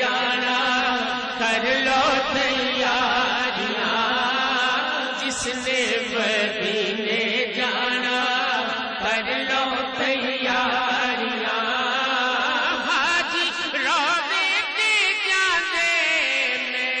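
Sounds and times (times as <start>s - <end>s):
men chanting over microphone: 0.0s - 17.0s.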